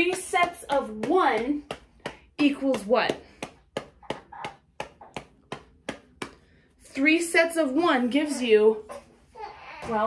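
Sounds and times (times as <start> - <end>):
baby sound: 4.0 - 5.4, 8.2 - 10.0.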